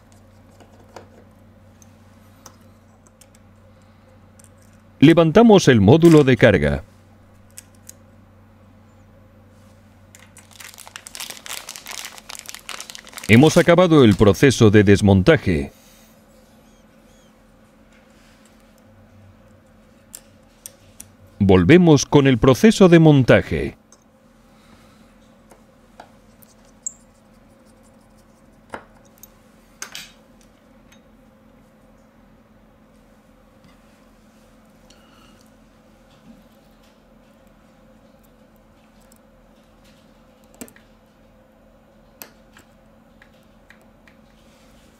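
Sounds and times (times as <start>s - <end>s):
faint steady hum: 0.0s - 44.9s
small parts being handled: 10.1s - 14.4s
plastic packaging crinkling: 10.1s - 14.5s.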